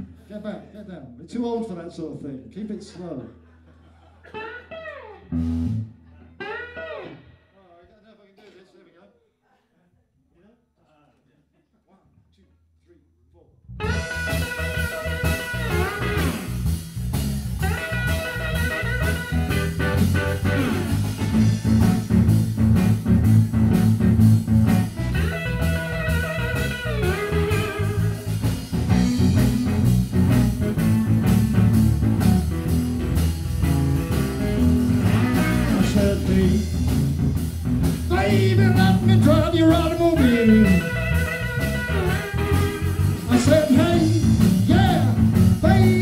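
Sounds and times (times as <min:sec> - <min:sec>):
live blues band: 0:04.3 - 0:07.4, 0:13.8 - 0:46.0
electric guitar lead lines: 0:04.3 - 0:07.5, 0:13.8 - 0:46.0.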